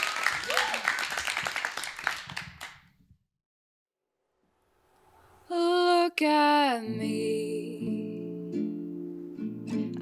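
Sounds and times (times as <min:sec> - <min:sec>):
audience clapping and cheering: 0:00.0 - 0:03.0
whoops: 0:00.3 - 0:01.1.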